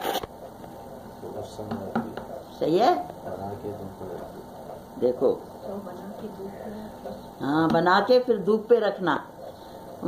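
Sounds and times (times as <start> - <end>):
faint room noise: 0.0 - 10.0
low electrical hum: 0.0 - 10.0.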